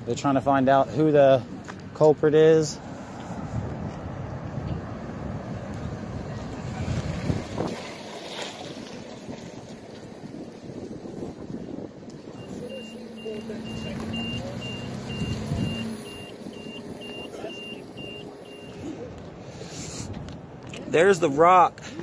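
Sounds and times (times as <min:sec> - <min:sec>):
traffic noise: 0:00.0 - 0:22.0
engine running: 0:12.1 - 0:19.7
reversing alarm beeping: 0:12.3 - 0:18.9.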